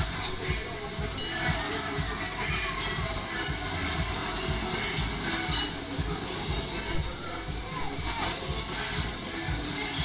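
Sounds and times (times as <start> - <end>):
fairground music with thumping beat: 0.0 - 10.0
high thin metallic squeal: 0.1 - 9.9.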